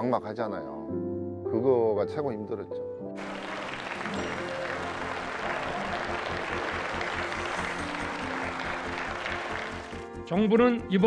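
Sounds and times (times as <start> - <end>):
background music: 0.0 - 11.0
sustained applause: 3.2 - 10.2.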